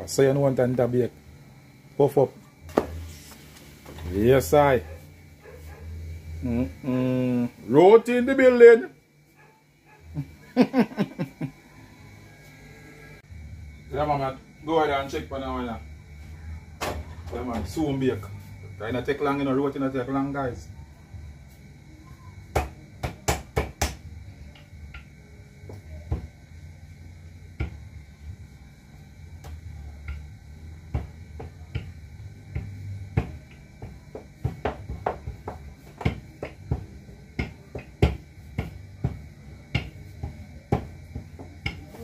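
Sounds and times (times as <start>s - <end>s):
hands patting dough: 30.8s - 42.0s.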